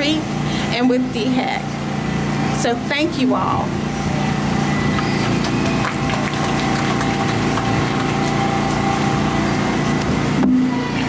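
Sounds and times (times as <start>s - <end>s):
engine idling: 3.7s - 11.0s.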